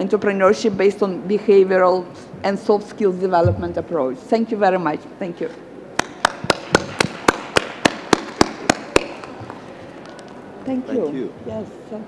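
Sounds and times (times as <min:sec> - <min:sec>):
person clapping: 0:06.0 - 0:09.4.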